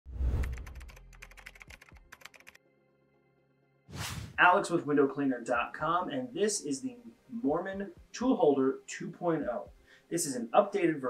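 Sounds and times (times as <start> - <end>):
keyboard typing clicks: 0.5 - 2.6
whoosh: 3.9 - 4.4.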